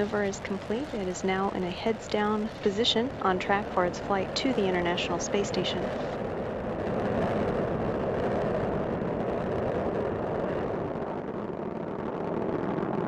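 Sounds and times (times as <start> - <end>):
rocket engines rumbling: 0.0 - 13.0.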